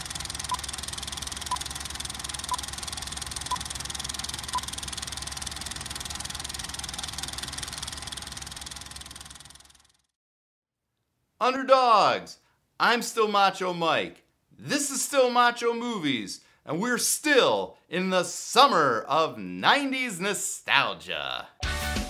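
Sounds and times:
film projector whirring: 0.0 - 10.2.

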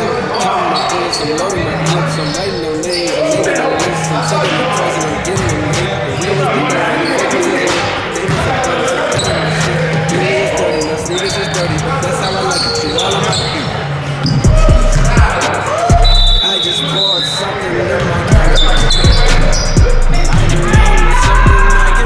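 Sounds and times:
sneakers squeaking: 0.0 - 21.7
voices echoing in hall: 0.0 - 22.0
music with heavy bass: 1.5 - 12.2, 14.3 - 17.0, 18.3 - 22.0.

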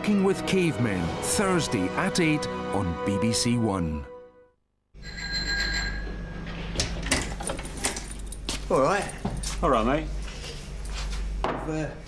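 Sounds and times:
small metal bell ringing: 5.0 - 6.1.

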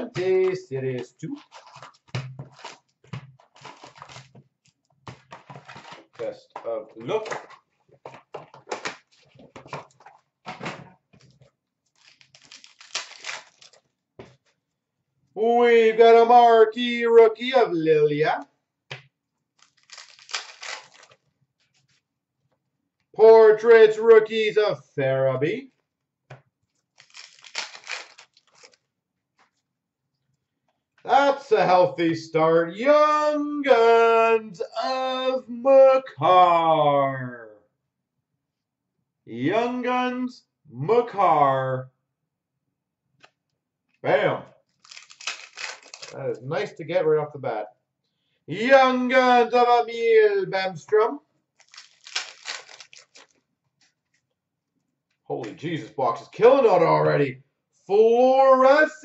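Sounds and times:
foil card packs rustling: 1.3 - 4.4, 5.0 - 6.3, 11.2 - 13.9, 19.6 - 21.2, 27.0 - 29.6, 44.8 - 46.2, 51.6 - 54.2.

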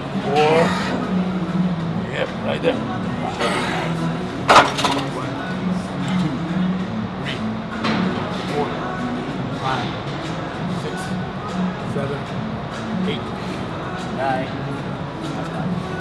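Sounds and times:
gym background music: 0.0 - 16.0.

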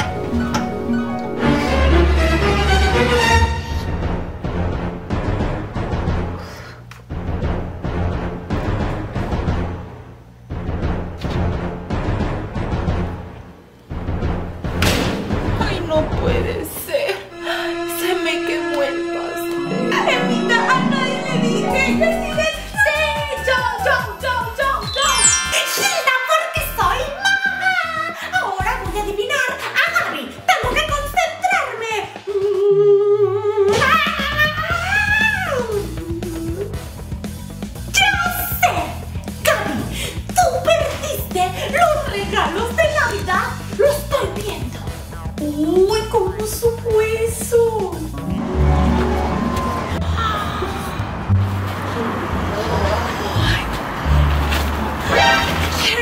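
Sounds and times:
timpani roll: 0.0 - 6.4, 48.1 - 50.2
dramatic background music: 0.0 - 29.5, 33.7 - 51.6
woman singing wordless note: 17.4 - 22.8.

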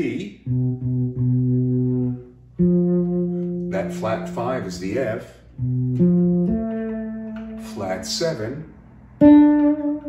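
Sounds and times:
fretless bass held notes: 0.0 - 10.0.

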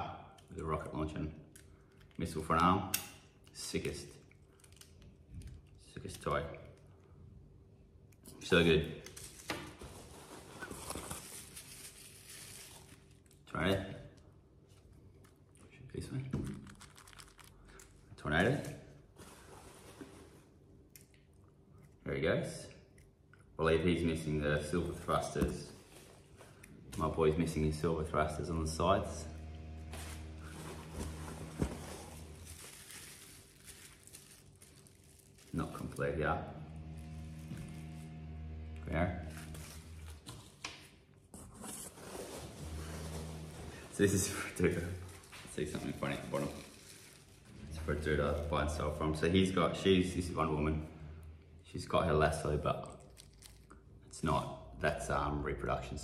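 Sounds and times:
plastic wrapping rustling: 9.2 - 13.5, 16.4 - 18.1, 29.4 - 36.1, 41.8 - 49.1.

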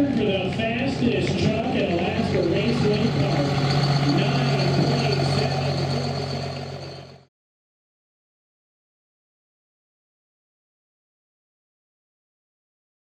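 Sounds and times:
spectators' voices: 0.0 - 7.2
diesel truck idling: 0.0 - 7.3.

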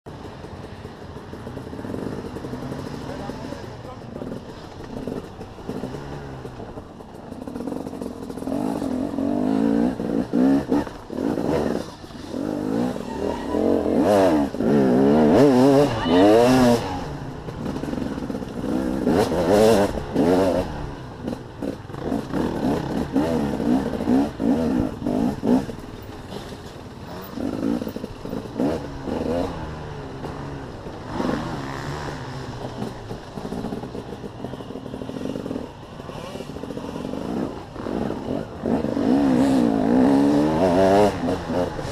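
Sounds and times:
motorcycle engine revving: 0.1 - 41.9.

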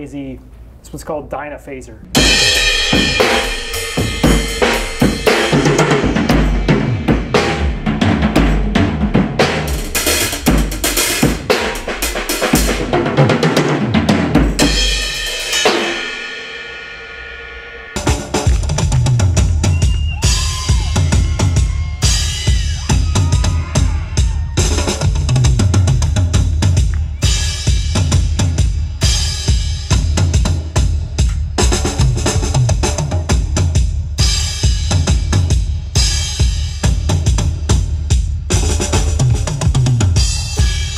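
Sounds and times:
crash cymbal ringing: 2.1 - 6.1, 14.6 - 18.2
drum kit played busily: 2.1 - 40.9.

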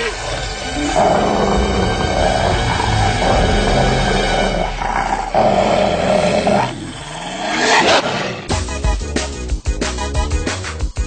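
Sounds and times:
cartoon animal growling: 0.8 - 7.8.

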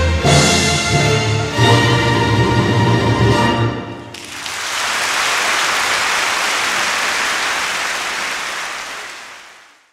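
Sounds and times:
audience applauding: 4.1 - 9.9.

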